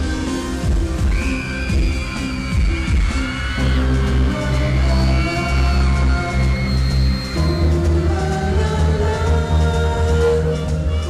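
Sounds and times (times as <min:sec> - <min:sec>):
loud live pop music: 0:00.0 - 0:11.0.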